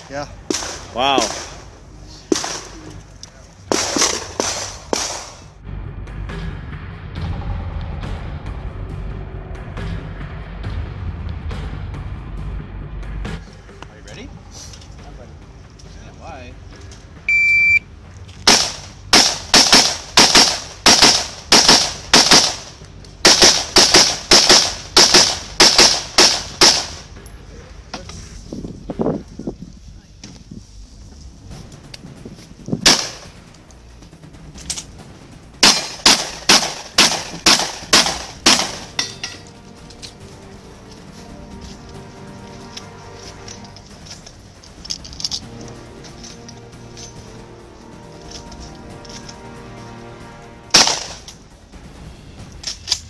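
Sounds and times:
rapid gunshots: 0:03.7 - 0:05.5, 0:18.5 - 0:27.0, 0:32.8 - 0:33.3, 0:35.6 - 0:38.9, 0:50.7 - 0:51.2
shot timer start beep: 0:17.3 - 0:17.9.

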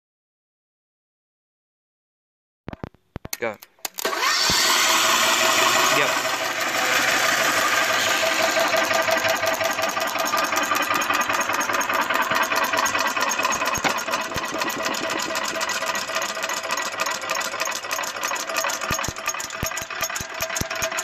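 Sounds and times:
small engine mechanical clatter: 0:03.8 - 0:21.0.

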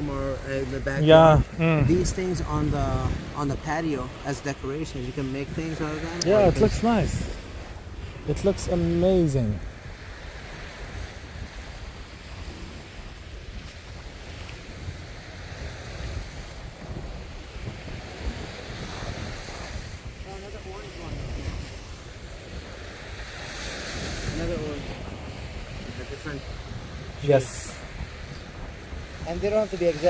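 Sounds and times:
surf on a beach: 0:00.0 - 0:30.0
wind buffeting microphone: 0:00.0 - 0:30.0
faint voice: 0:01.0 - 0:02.2.

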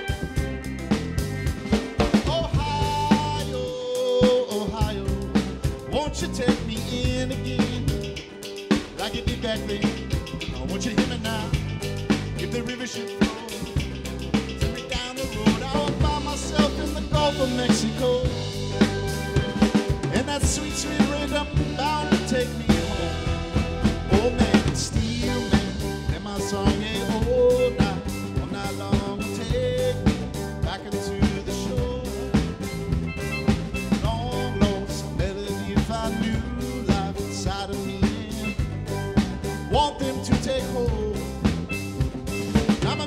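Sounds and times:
acoustic guitar: 0:00.0 - 0:43.0
drum kit beat: 0:00.0 - 0:43.0
electric bass: 0:00.0 - 0:43.0
live band playing instrumental: 0:00.0 - 0:43.0
sliding lead melody: 0:00.0 - 0:43.0.

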